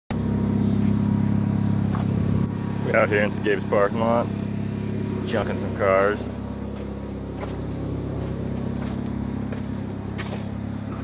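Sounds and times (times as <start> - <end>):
vehicle engine idling: 0.1 - 11.0.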